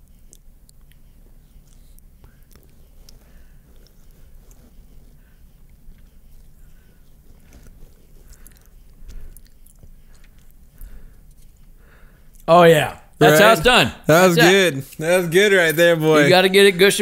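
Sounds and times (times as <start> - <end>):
chewing honeycomb: 0.0 - 12.5.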